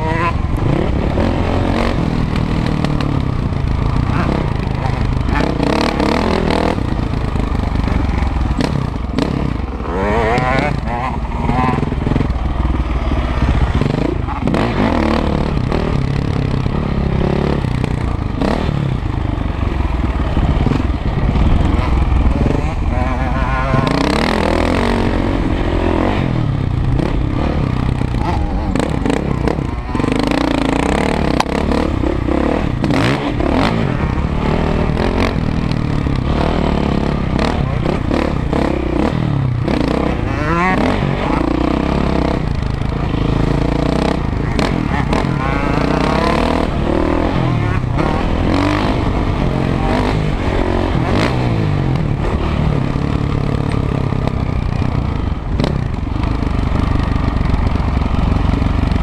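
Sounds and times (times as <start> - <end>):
motocross engine revving: 0.0 - 59.0.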